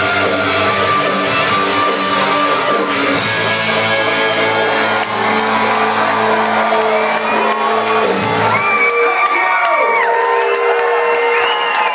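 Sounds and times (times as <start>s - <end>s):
rock band chord ringing: 0.0s - 7.1s
crowd cheering: 0.0s - 11.9s.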